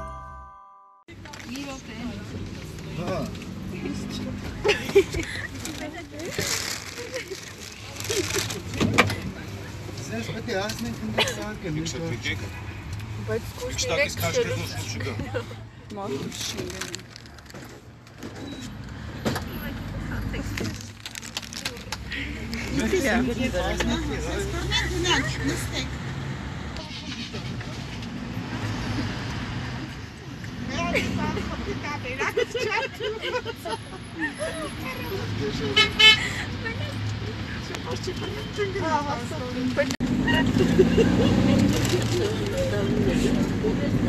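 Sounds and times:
minibus engine rumbling: 0.0s - 44.0s
voices: 19.2s - 28.1s, 30.2s - 44.0s.

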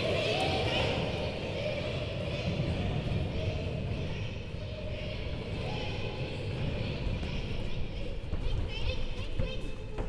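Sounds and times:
girls choir singing: 0.0s - 9.1s.

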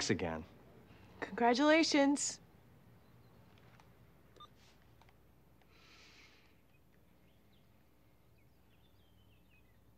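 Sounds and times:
faint electronic phone beep: 4.3s - 4.7s.

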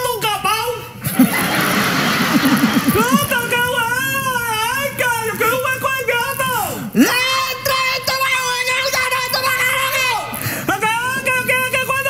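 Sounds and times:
audience laughter: 1.0s - 3.6s.

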